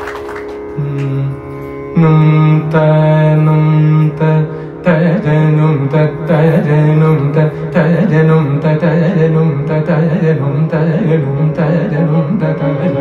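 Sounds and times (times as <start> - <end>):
electronic tanpura drone: 0.0 - 13.0
man singing: 0.8 - 13.0.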